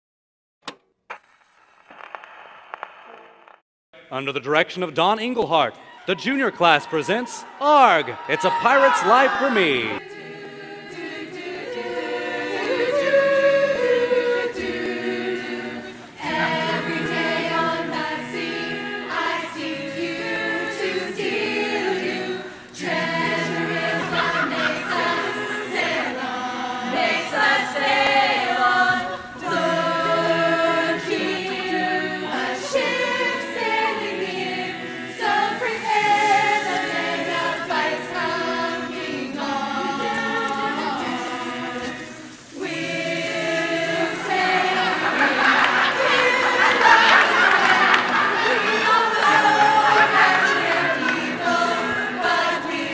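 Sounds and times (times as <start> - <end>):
choir singing a cappella: 6.4 - 52.9.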